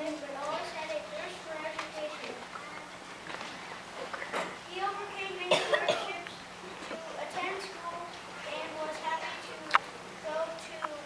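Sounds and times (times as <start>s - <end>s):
person coughing: 5.5s - 6.2s.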